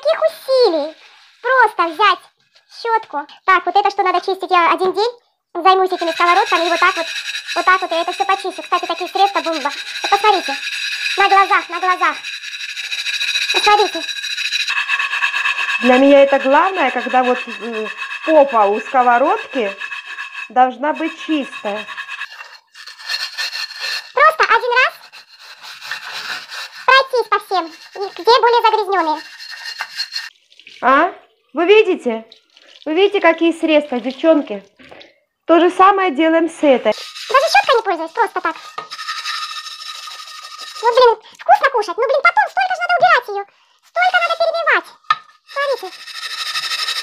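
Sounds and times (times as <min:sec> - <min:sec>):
wire pad scrubbing frying pan: 0:05.6 - 0:30.7, 0:36.9 - 0:41.2, 0:44.0 - 0:47.0.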